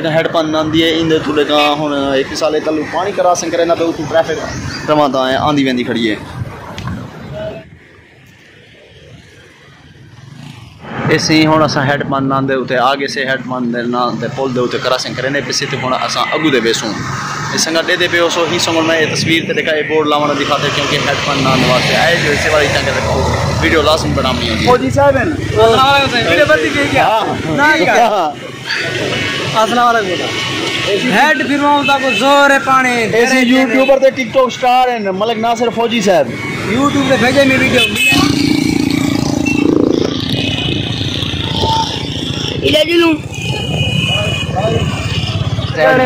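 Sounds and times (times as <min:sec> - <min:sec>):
men talking: 0:00.0 - 0:07.8, 0:10.8 - 0:39.3, 0:39.9 - 0:46.0
road traffic: 0:00.0 - 0:46.0
burst of voices: 0:36.2 - 0:46.0.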